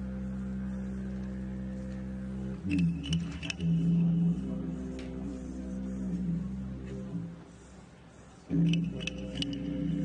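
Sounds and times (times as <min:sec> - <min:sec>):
didgeridoo drone: 0:00.0 - 0:07.8, 0:08.4 - 0:10.0.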